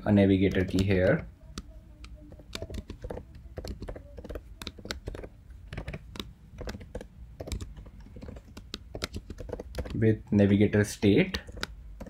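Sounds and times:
typing on computer keyboard: 0.4s - 10.0s, 11.0s - 12.0s.

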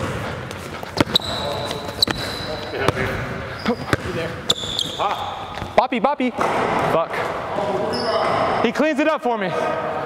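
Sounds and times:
basketball bouncing on gym court: 0.0s - 5.8s
sneaker squeak on court floor: 1.0s - 5.7s.

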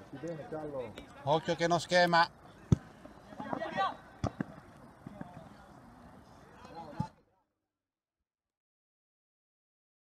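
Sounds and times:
distant players' voices: 0.0s - 7.4s.

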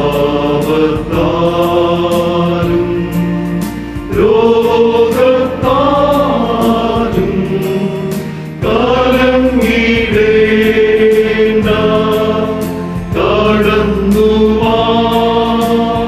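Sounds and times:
male choir singing a hymn: 0.0s - 16.0s.

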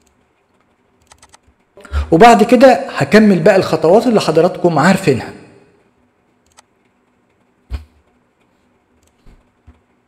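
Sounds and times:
keyboard clicks: 0.0s - 1.6s, 6.4s - 8.2s, 9.0s - 9.8s.

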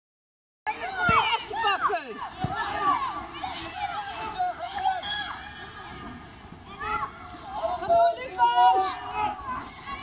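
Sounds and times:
children calling: 0.7s - 10.0s.

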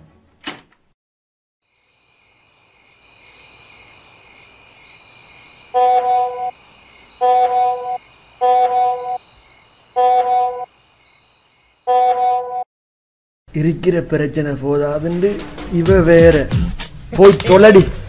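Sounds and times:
crickets chirping: 1.6s - 12.0s
mobile phone buzzing: 5.8s - 6.5s, 7.2s - 9.2s, 10.0s - 10.7s, 11.9s - 12.6s.

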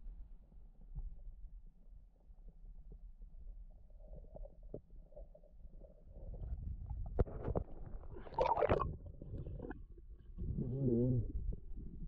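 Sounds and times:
muffled underwater rumble: 0.0s - 12.0s.

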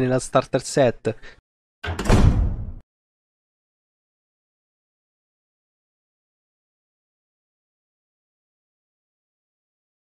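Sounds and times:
heavy door clack and rumble: 1.8s - 2.8s.

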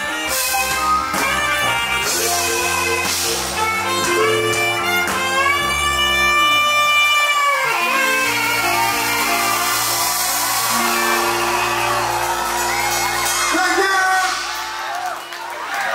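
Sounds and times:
long saxophone note: 0.0s - 13.4s
live reggae band: 0.0s - 15.4s
crowd cheering and whooping: 8.0s - 15.9s.

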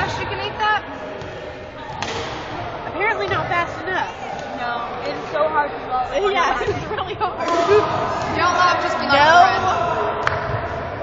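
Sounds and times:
voices and chatter in hall: 0.0s - 11.0s.

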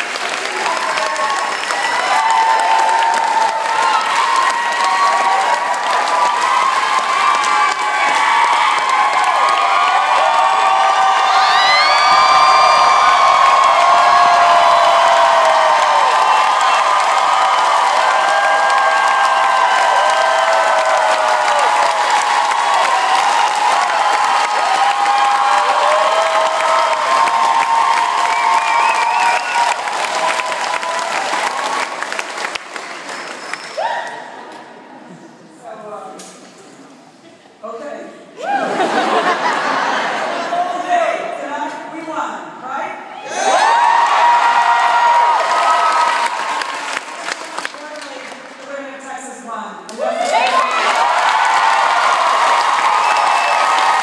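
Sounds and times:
crowd cheering and applauding: 0.0s - 34.8s, 38.4s - 40.6s, 43.2s - 48.7s, 49.9s - 54.0s
high whoop: 1.0s - 31.8s, 33.7s - 34.4s, 38.4s - 38.8s, 43.2s - 46.8s, 50.0s - 54.0s.

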